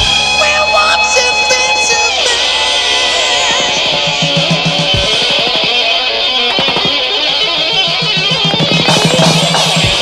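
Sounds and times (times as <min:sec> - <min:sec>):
hard rock guitar: 0:00.0 - 0:10.0.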